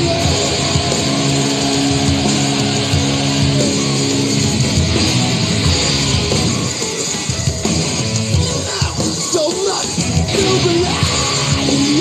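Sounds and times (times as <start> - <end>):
electric guitar chord ringing: 0.0 - 8.2
rock music recording: 0.0 - 12.0.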